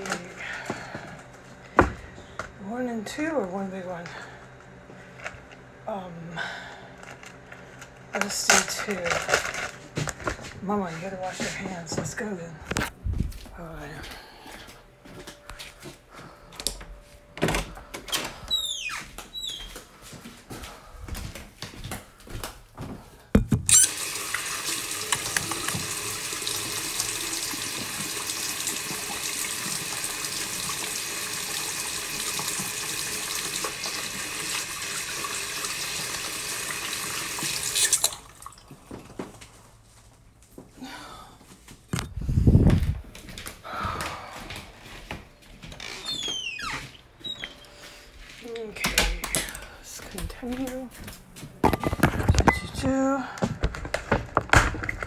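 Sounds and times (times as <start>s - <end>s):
tap water running into sink: 23.7s - 39.4s.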